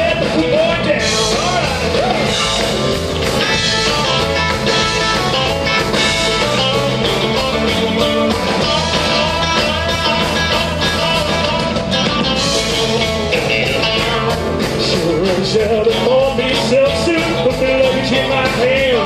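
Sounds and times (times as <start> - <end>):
electric guitar: 0.0 - 19.0
rock and roll band instrumental: 0.0 - 19.0
steady drum beat: 0.0 - 19.0.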